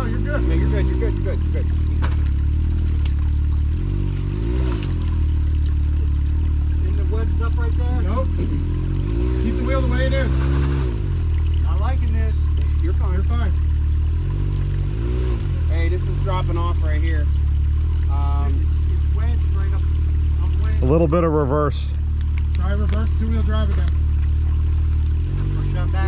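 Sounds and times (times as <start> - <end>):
utility vehicle engine revving: 0.0 - 26.0.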